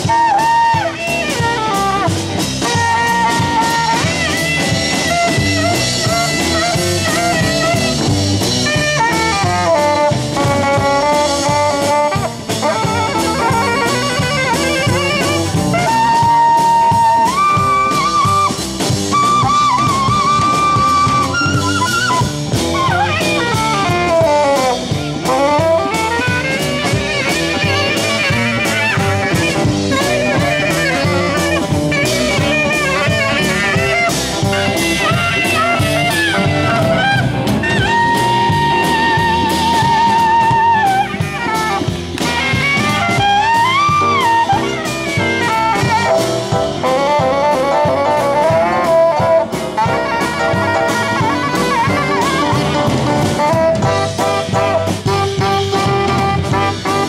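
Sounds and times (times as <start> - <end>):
drums: 0.0 - 57.0
electric guitar: 0.0 - 57.0
saxophone solo: 0.0 - 57.0.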